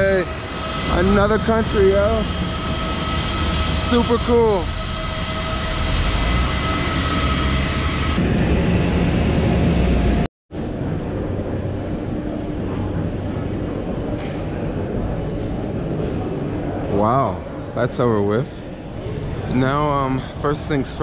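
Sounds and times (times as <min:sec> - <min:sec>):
airliner engine whine: 0:00.0 - 0:17.7
terminal hall hum: 0:00.0 - 0:21.0.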